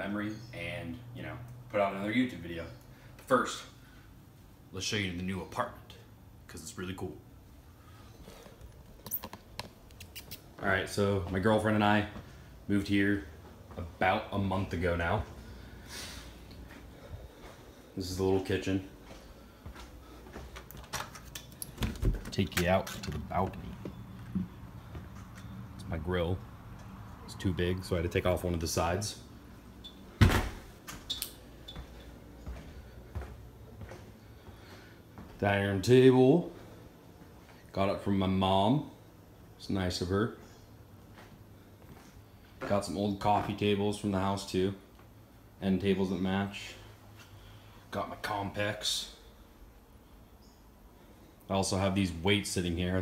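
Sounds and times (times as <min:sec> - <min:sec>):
footsteps on wooden floor: 0:19.0 - 0:20.7, 0:23.3 - 0:25.4, 0:31.7 - 0:35.4
door shutting with thud: 0:30.2 - 0:30.7.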